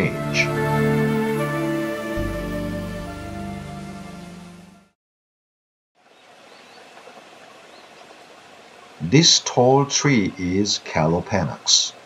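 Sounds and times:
soft outdoor hiss: 0:06.0 - 0:12.0.

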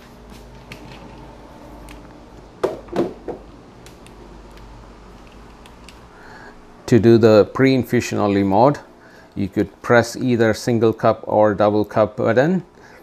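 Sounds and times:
low steady hum: 0:00.0 - 0:13.0
portafilter knocks and clicks: 0:02.6 - 0:04.0.

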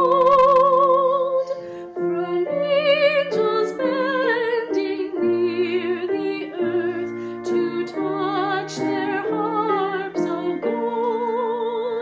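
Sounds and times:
woman singing with vibrato: 0:00.0 - 0:12.0.

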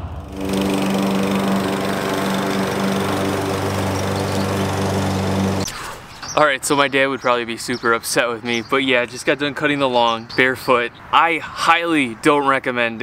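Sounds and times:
lawn mower engine running: 0:00.0 - 0:05.7.

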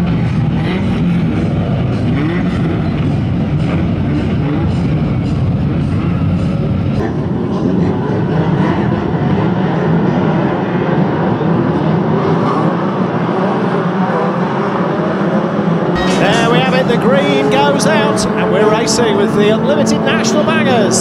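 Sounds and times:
many racing car engines: 0:00.0 - 0:21.0.

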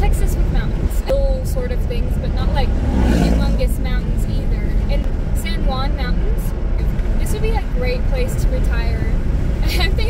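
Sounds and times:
car road and engine rumble: 0:00.0 - 0:10.0
truck passing rush: 0:00.0 - 0:10.0.

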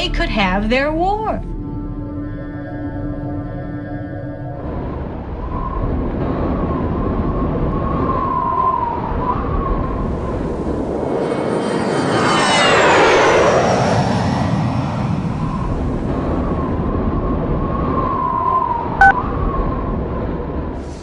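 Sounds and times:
jet aircraft flying past: 0:04.6 - 0:19.9.

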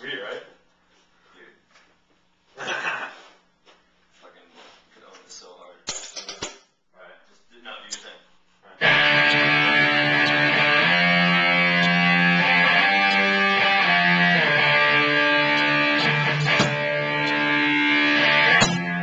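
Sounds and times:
electric guitar chords: 0:08.8 - 0:19.0.

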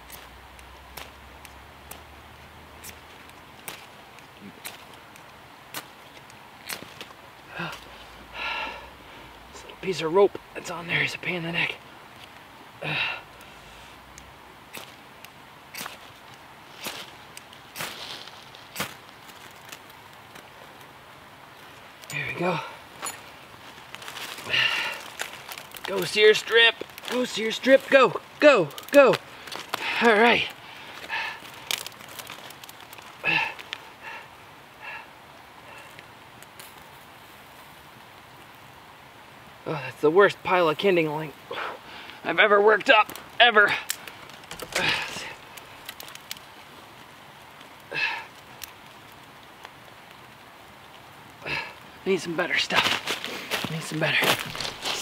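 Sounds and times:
twigs clicking: 0:00.0 - 0:34.4, 0:41.2 - 0:55.0
fire starter crackling and hissing: 0:00.0 - 0:55.0
fire steel scraping: 0:42.8 - 0:46.6, 0:52.6 - 0:55.0.

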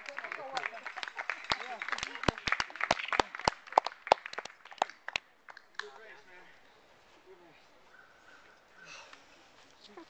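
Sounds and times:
people clapping: 0:00.0 - 0:06.1.

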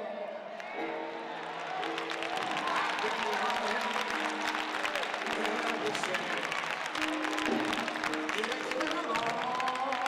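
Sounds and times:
audience applauding: 0:00.5 - 0:10.0.

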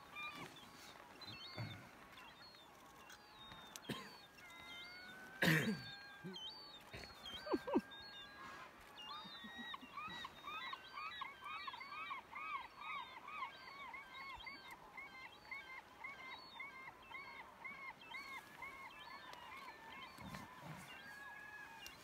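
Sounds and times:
bird calling: 0:00.0 - 0:22.0.

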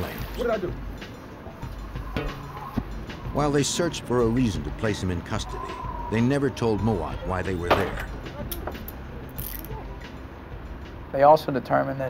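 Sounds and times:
handcuffs ratcheting: 0:08.5 - 0:09.8.

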